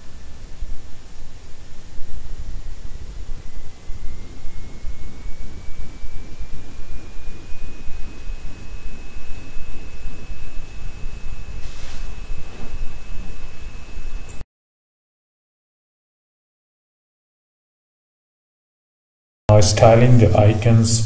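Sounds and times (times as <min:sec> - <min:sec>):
high whine rising in pitch: 0:00.0 - 0:14.4, 0:19.5 - 0:21.0
low rumbling: 0:00.0 - 0:14.4
burst of hiss: 0:11.6 - 0:12.7.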